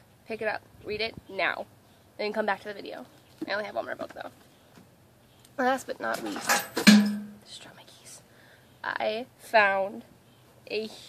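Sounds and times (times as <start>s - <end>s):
woman speaking: 0.3s - 4.4s, 8.8s - 10.0s, 10.7s - 11.0s
faint breathy sounds: 7.8s - 8.8s.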